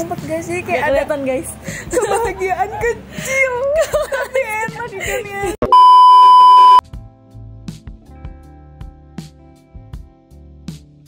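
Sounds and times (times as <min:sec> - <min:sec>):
women laughing and talking: 0:00.7 - 0:05.6
censor bleep tone: 0:05.6 - 0:06.8.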